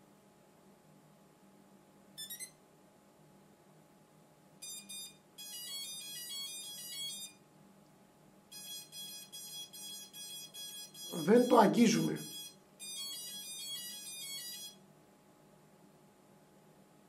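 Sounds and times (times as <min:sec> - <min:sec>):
quadcopter electronic beeps: 0:08.6 - 0:11.6, 0:12.2 - 0:14.8.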